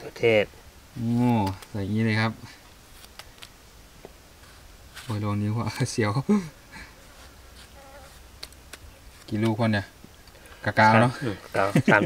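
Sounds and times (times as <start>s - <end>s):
flying insect buzzing: 7.4s - 8.5s.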